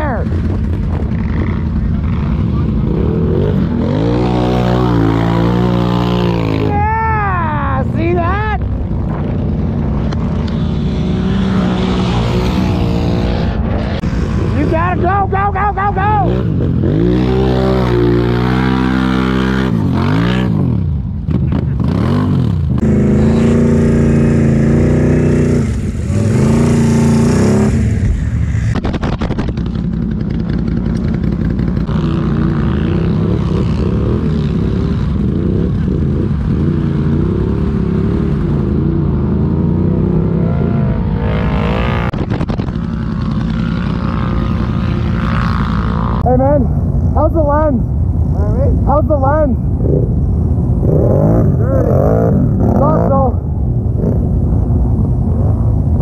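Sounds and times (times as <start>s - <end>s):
atv engine revving: 0.0s - 56.0s.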